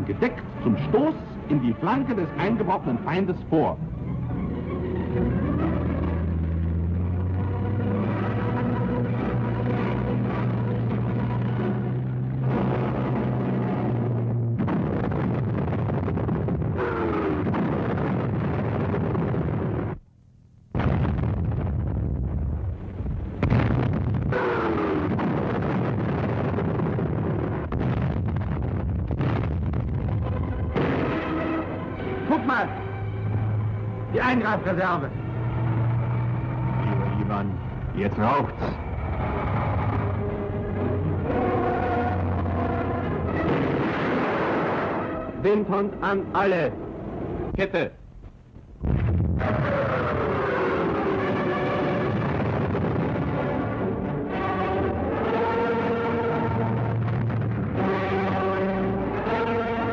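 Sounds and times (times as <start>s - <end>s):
rumble of tracked vehicle engines: 0.0s - 18.2s, 28.7s - 43.5s
explosions: 9.1s - 20.0s, 20.7s - 32.4s, 35.8s - 46.0s, 48.8s - 55.4s, 56.2s - 58.8s.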